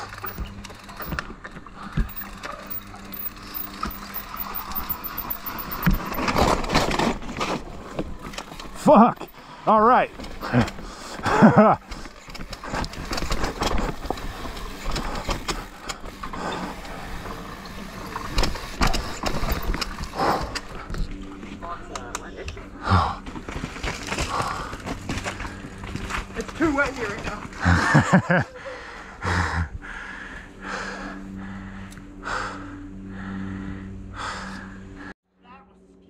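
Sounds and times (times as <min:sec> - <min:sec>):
bike tyres on loose dirt: 0:00.0 - 0:21.8, 0:22.8 - 0:28.5
bike knocking and rattling: 0:00.0 - 0:22.4, 0:23.2 - 0:28.4
person laughing: 0:10.4 - 0:11.9, 0:27.6 - 0:29.7.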